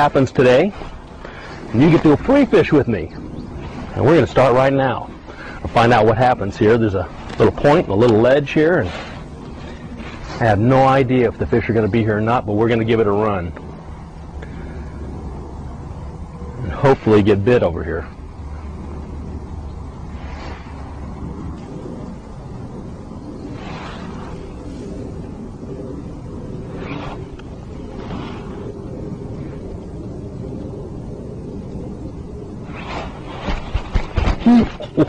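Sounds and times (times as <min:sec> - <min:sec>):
low hum: 0:00.0 - 0:35.0
low outdoor background noise: 0:00.0 - 0:35.0.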